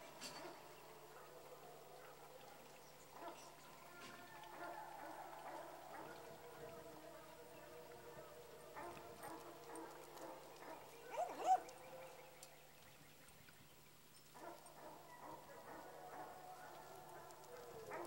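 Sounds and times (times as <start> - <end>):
animal calling: 11.1 - 11.8.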